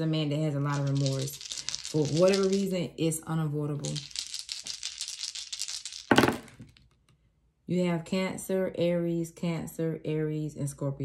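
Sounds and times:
dice clattering on a table: 0.6 - 2.8, 3.7 - 7.0
dice rattling in a hand: 0.6 - 2.9, 3.5 - 7.0.

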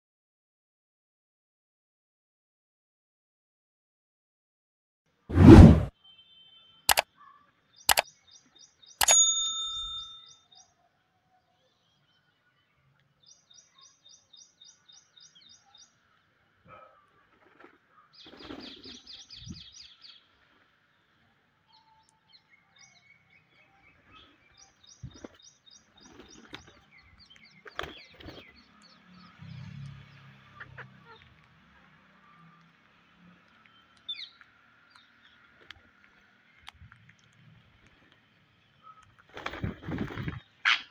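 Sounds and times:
ringing ding: 9.0 - 10.3.

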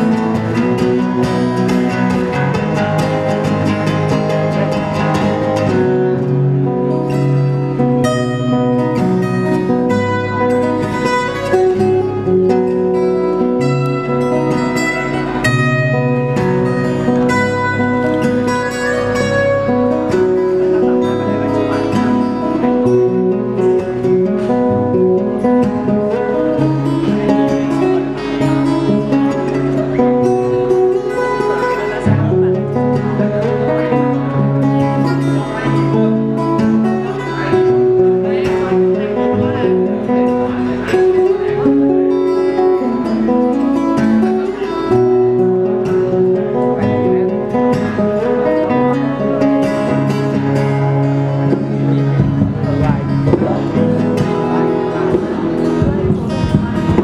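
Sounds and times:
acoustic guitar duet: 0.0 - 57.0.

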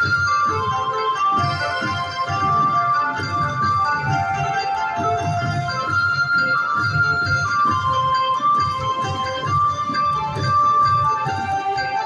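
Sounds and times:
slot machine music: 0.0 - 12.0.

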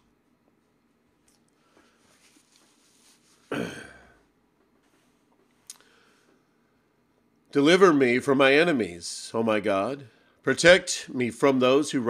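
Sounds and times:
man clearing throat: 3.5 - 4.3.

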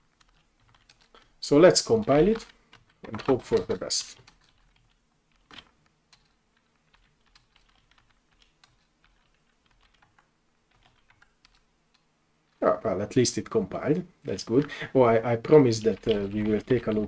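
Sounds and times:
faint keyboard typing: 0.0 - 17.0.

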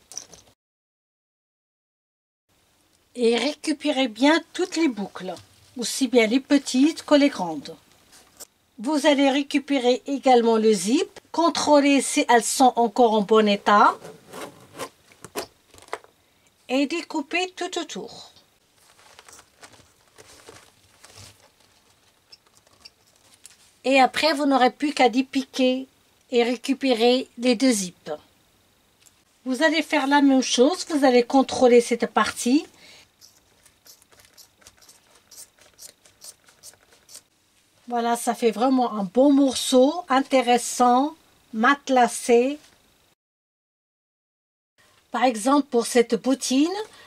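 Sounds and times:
metal zip rasping: 13.8 - 15.0, 33.2 - 37.3.

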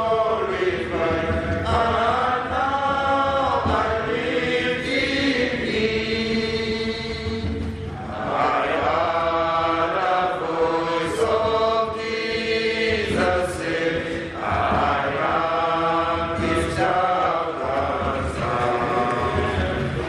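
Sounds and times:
group singing a hymn: 0.0 - 20.0.

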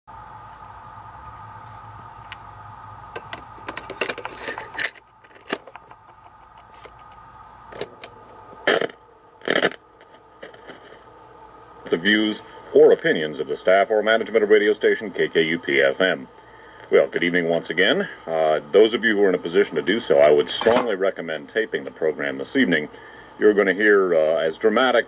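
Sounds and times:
steady hum: 0.1 - 25.0
cassette recorder clicks and clunks: 3.2 - 8.9.

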